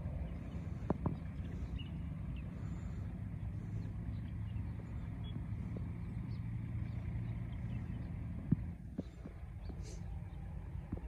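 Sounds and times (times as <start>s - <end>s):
engine idling hum: 0.0s - 11.0s.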